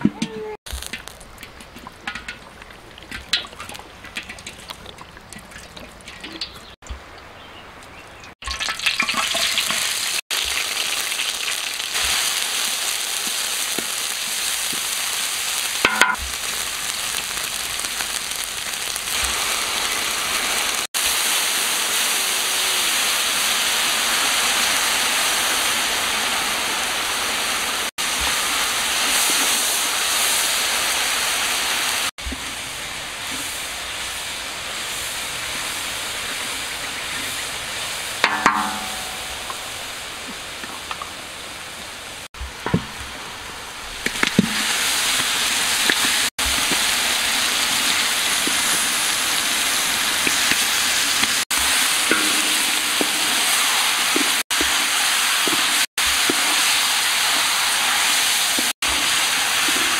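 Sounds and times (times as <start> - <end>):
food sizzling in hot oil: 0.7 - 6.8, 8.3 - 40.6, 42.2 - 59.9.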